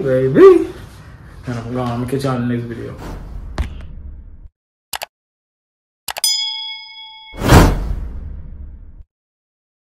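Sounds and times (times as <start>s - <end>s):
short clicks: 4.9s - 5.1s
bell-like ding: 6.2s - 7.8s.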